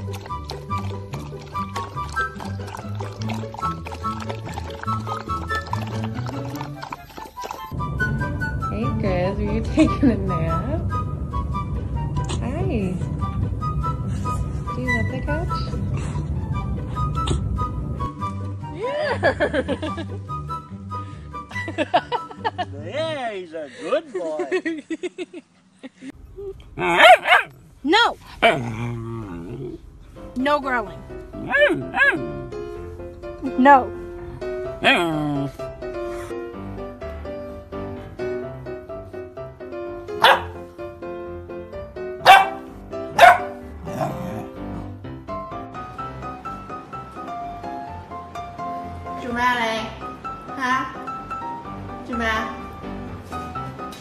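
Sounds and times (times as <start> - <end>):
puppies lapping water: 0.0 - 7.8
background music with bass: 0.0 - 23.4, 26.2 - 54.0
puppy growling: 28.3 - 30.1, 31.3 - 32.5, 34.2 - 35.7, 43.3 - 45.0.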